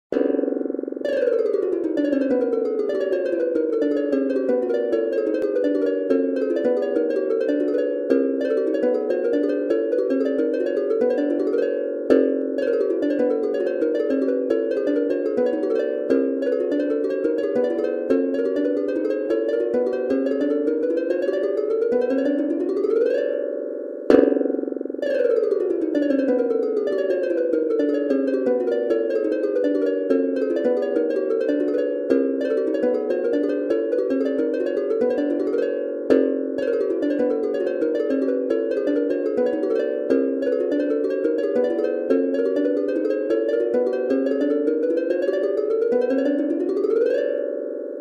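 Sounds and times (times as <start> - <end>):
synthesized notes polyrhythm: 0.1 - 48.0.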